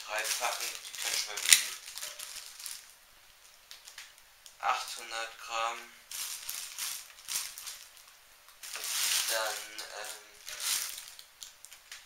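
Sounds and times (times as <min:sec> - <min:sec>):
plastic bag crinkling: 0:00.0 - 0:04.6, 0:06.1 - 0:12.0.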